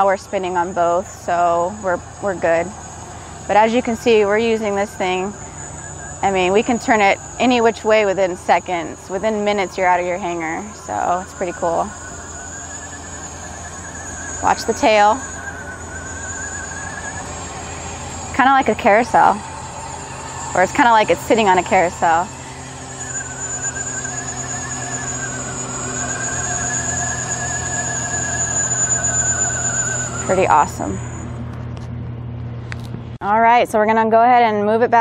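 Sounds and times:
electric drive whining: 0.0s - 33.2s
electric motor low hum: 0.0s - 33.2s.

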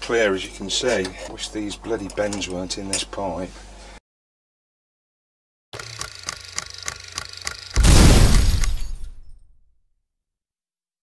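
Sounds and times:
loud crash: 7.8s - 9.4s.

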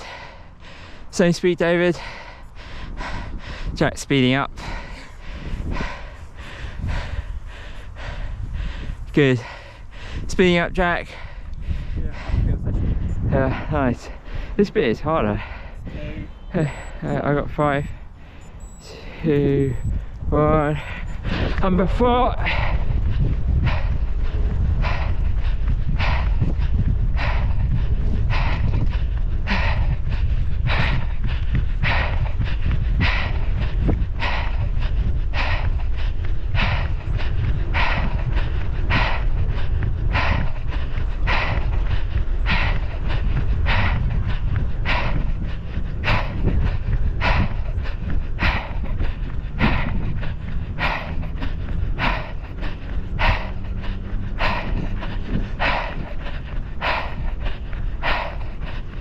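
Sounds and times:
runner panting: 0.0s - 59.0s
wind rumble on microphone: 0.0s - 59.0s.

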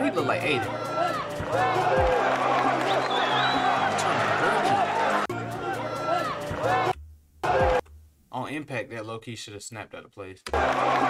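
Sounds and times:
crowd yelling and cheering: 0.0s - 7.8s, 10.5s - 11.0s
background music: 0.0s - 8.4s, 10.5s - 11.0s.

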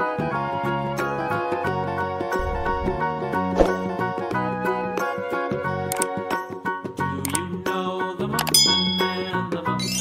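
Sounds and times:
background music: 0.0s - 10.0s
bell-like ding: 8.6s - 9.4s.

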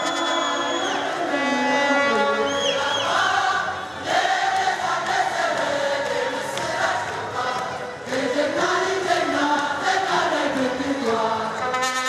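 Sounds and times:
group chanting: 2.4s - 11.6s.

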